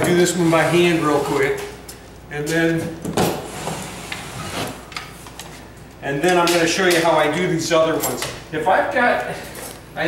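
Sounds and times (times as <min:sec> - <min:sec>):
drywall box scraping ceiling: 0:00.0 - 0:01.5.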